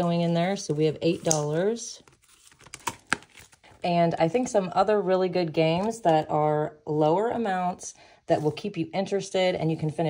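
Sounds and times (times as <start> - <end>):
plastic crinkling: 0.0 - 3.8
paper and plastic rustling: 0.0 - 3.9.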